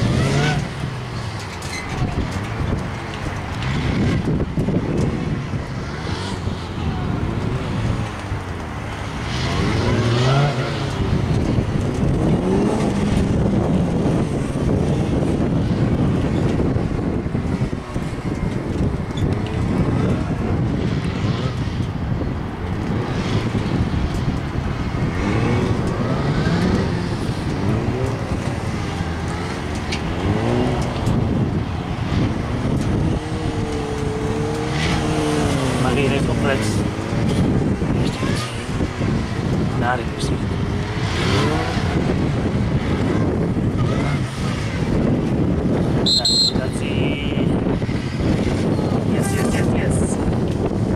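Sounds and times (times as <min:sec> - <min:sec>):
motorcycle engine revving: 0:00.0 - 0:50.9.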